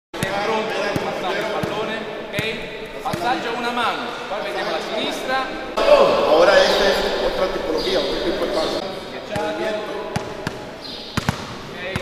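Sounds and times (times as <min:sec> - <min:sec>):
voices talking: 0:00.2 - 0:11.1
basketballs bouncing on gym floor: 0:10.1 - 0:12.0.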